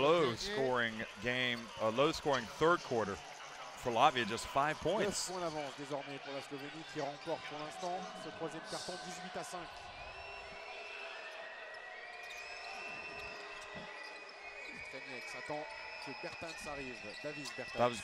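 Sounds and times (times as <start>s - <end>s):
arena crowd noise: 0.0s - 18.0s.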